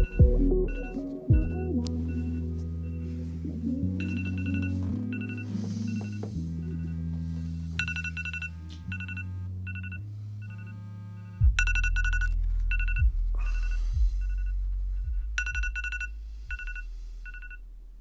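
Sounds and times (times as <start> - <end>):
low bass sounds: 0.0 - 18.0
phone alarm beeps: 4.0 - 7.0, 7.8 - 14.6, 15.4 - 17.6.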